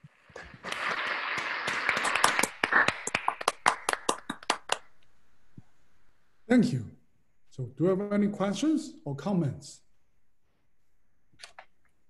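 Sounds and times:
applause: 0.0s - 4.9s.

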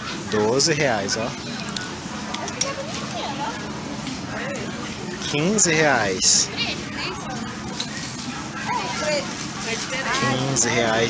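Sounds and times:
murmur of room noise: 0.0s - 11.0s.

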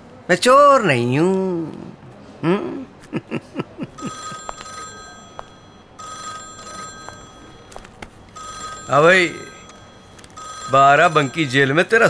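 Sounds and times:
telephone ringing: 3.9s - 12.0s.

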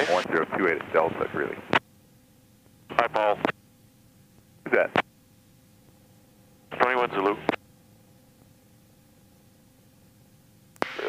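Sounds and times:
man's voice: 0.0s - 0.3s
faint steady hum: 0.0s - 11.0s.

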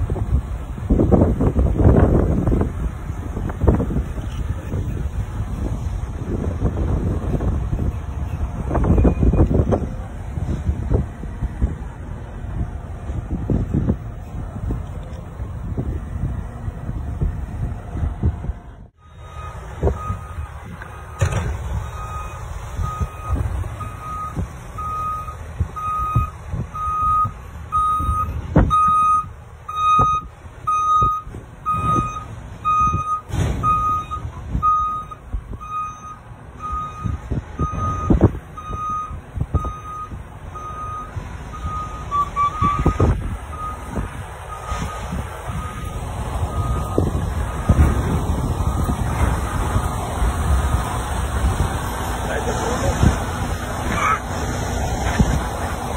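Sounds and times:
low road rumble: 0.0s - 55.9s
reversing alarm beeps: 19.0s - 43.9s, 44.5s - 47.9s.

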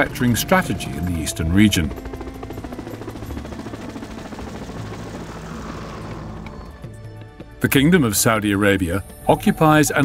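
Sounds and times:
helicopter rotor beating: 0.0s - 7.7s.

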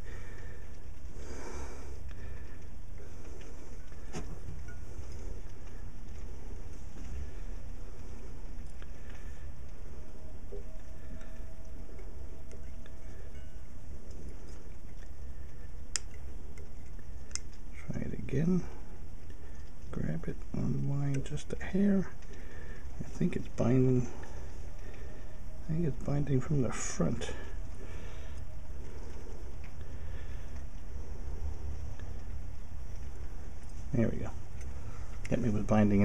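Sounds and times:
steady low hum: 0.0s - 36.0s
steel wire and pliers clicking: 10.7s - 17.7s.

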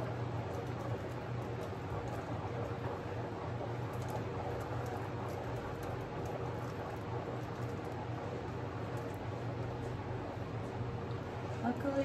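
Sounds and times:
paint spinner whirring: 0.0s - 12.0s.

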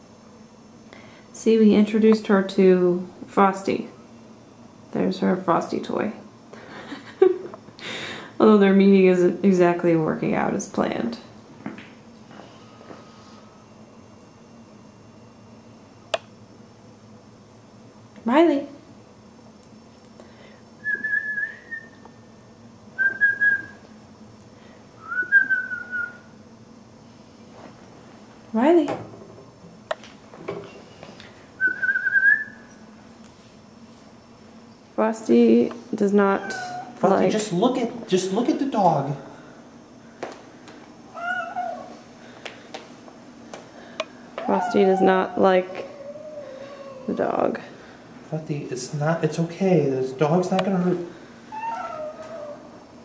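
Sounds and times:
cat meowing: 36.4s - 37.0s, 41.1s - 41.9s, 44.4s - 47.2s, 51.6s - 52.7s.

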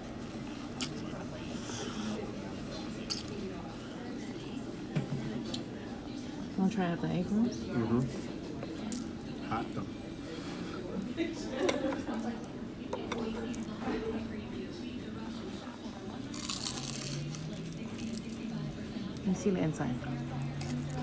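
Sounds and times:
faint background voices: 0.0s - 21.0s
crunchy egg roll chewing: 16.2s - 18.8s.

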